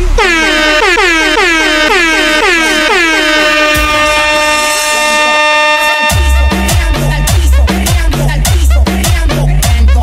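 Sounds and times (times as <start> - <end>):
air horn blasts: 0.0 - 7.7
dance music beat: 0.0 - 10.0
deep bass: 0.0 - 10.0.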